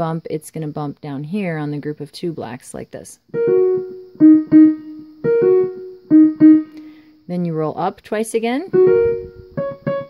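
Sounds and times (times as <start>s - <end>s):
digital piano notes: 3.3s - 7.0s, 8.6s - 10.0s.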